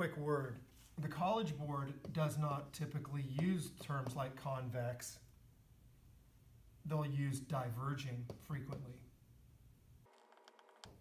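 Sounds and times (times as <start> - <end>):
marker writing on whiteboard: 0.8 - 2.5, 3.4 - 4.3, 8.2 - 8.9.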